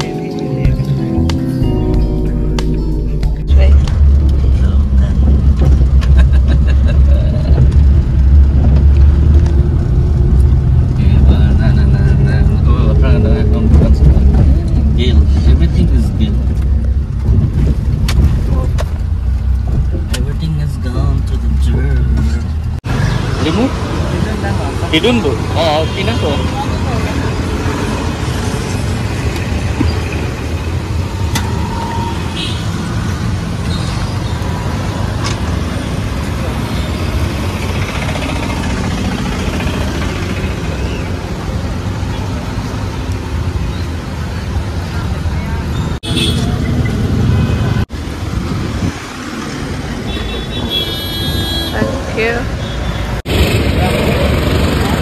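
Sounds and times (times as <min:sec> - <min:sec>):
street traffic: 0:00.0 - 0:55.0
voices: 0:51.7 - 0:52.7.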